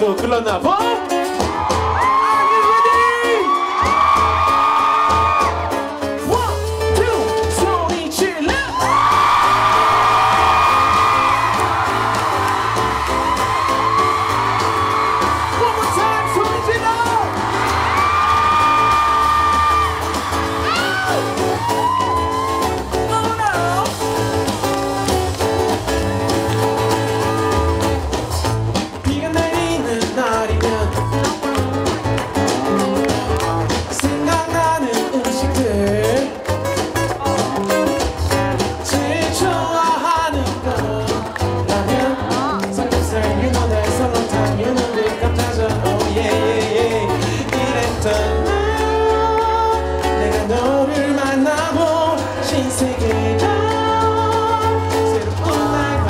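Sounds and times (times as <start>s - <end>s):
live pop band: 0.0s - 56.0s.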